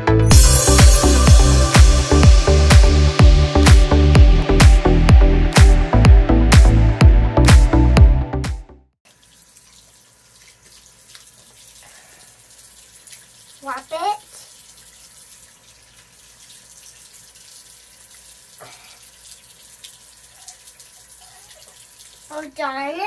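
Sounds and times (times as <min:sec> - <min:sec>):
hands washing under water: 0:09.1 - 0:22.3.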